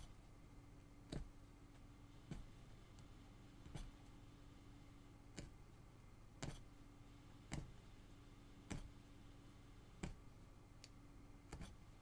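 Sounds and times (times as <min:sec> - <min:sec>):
punch needle clicks through fabric: 0:07.5 - 0:07.8, 0:10.0 - 0:10.2.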